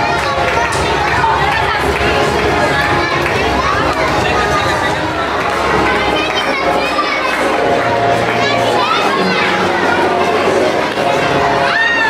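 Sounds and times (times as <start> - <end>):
children cheering and shouting: 0.0 - 12.0.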